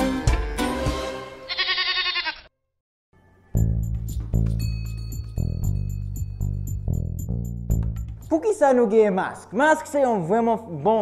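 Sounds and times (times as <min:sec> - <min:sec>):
goat bleating: 0:01.5 - 0:02.5
intro music: 0:03.6 - 0:08.4.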